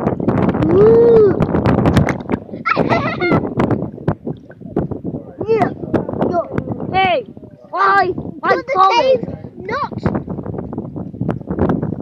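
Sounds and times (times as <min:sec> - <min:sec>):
wind buffeting microphone: 0:00.0 - 0:12.0
crackles and knocks: 0:01.4 - 0:02.5.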